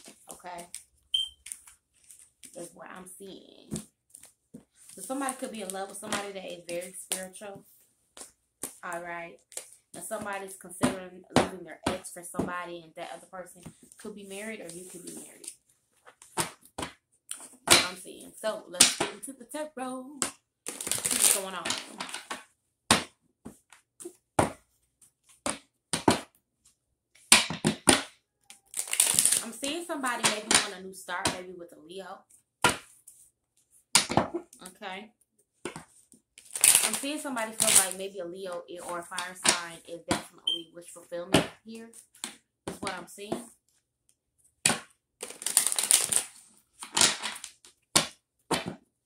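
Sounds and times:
cards being shuffled by hand: 20.7 - 22.4, 28.7 - 29.6, 44.8 - 47.6.

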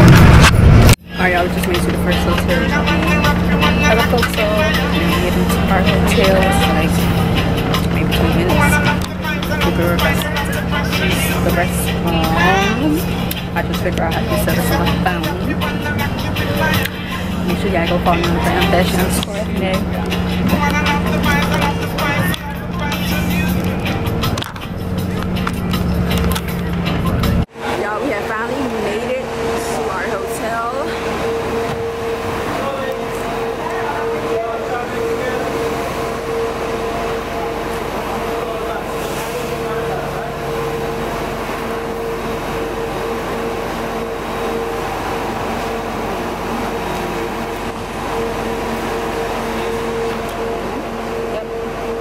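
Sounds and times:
bus engine droning: 0.0 - 52.0
muffled voices: 1.0 - 25.3, 26.1 - 52.0.

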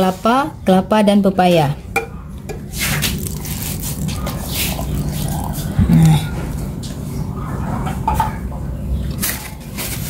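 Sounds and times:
liquid pouring into glass jar: 3.0 - 5.6.

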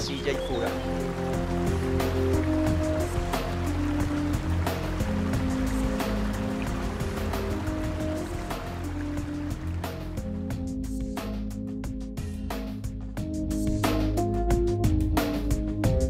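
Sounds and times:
stream rushing over rocks: 0.0 - 10.2
slow sustained background music: 0.0 - 16.0.

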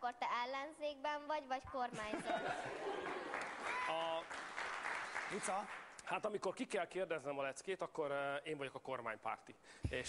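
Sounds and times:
audience applauding: 2.8 - 5.9.

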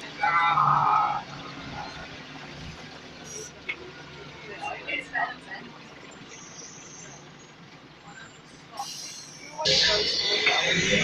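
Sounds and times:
bus engine drone: 0.0 - 11.0
faint passenger voices: 0.0 - 11.0.

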